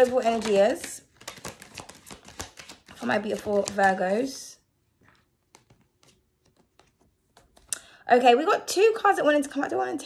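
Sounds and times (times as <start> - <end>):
cards being shuffled: 0.0 - 4.3, 5.0 - 7.7.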